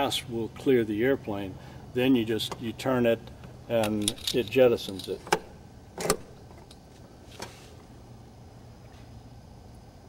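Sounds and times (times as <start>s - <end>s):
low room hum: 0.0s - 10.0s
metallic handle click: 3.8s - 6.4s.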